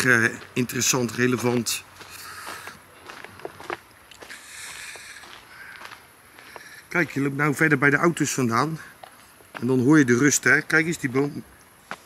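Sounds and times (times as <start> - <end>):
footsteps on gravel: 0.0 - 7.2, 8.9 - 10.8, 11.8 - 12.0
outdoor hiss: 0.0 - 12.0.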